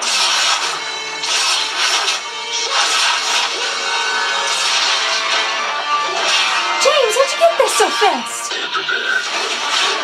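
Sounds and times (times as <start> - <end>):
dramatic soundtrack music: 0.0 - 10.0.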